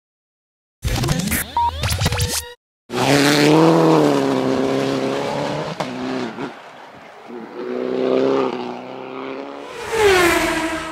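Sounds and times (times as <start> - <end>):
rally car engine revving: 2.9 - 10.9.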